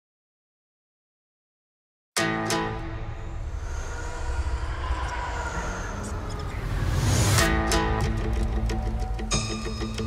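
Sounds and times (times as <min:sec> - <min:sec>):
low industrial city rumble: 0:02.9 - 0:09.2
faint sustained tones: 0:03.0 - 0:07.7.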